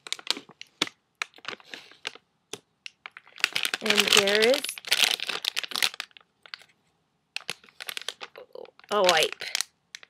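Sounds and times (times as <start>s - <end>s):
plastic wipes pack crinkling: 0.0s - 6.8s, 7.4s - 10.0s.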